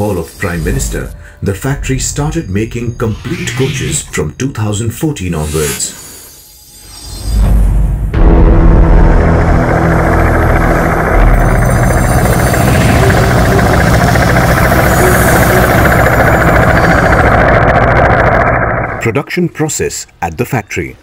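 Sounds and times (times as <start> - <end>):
helicopter flying: 8.2 - 19.1.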